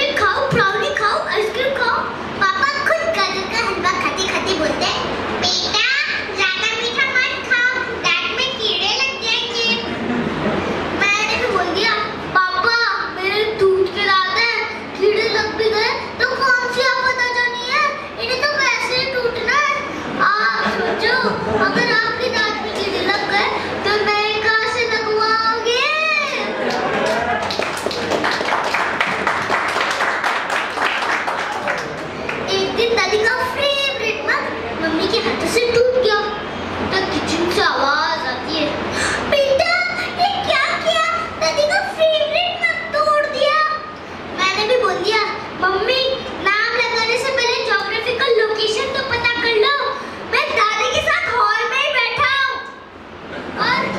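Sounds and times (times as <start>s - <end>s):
boy talking into a microphone: 0.0s - 26.7s, 32.3s - 53.9s.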